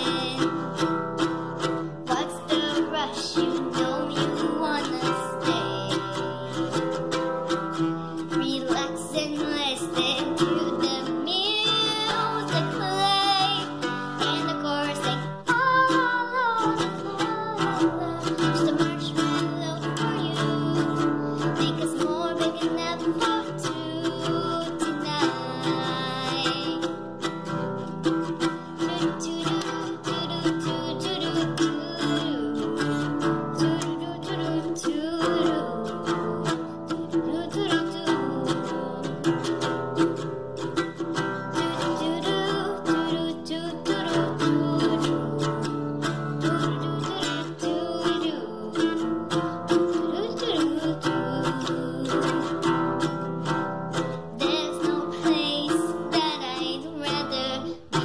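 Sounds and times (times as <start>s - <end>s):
acoustic guitar strumming: 0.0s - 58.0s
girl singing: 0.0s - 58.0s.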